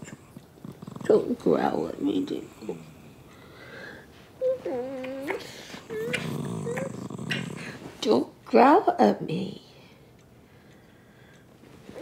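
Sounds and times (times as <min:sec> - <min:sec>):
small dog growling: 0:00.0 - 0:01.7, 0:04.7 - 0:08.0.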